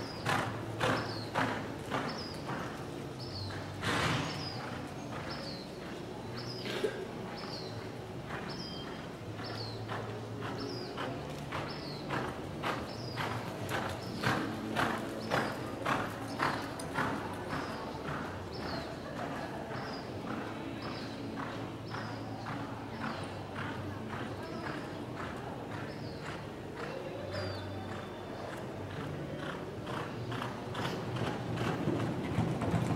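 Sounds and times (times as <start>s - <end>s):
horse hoofbeats on dirt: 0.0s - 32.9s.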